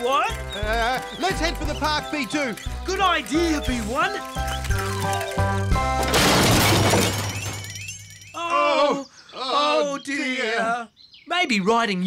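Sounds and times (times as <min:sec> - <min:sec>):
cartoon crash clattering smash: 0:06.0 - 0:08.0.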